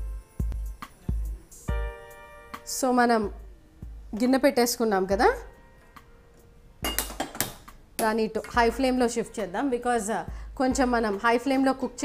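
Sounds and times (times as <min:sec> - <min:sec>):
metal pot clanking on stove: 0:06.8 - 0:07.6.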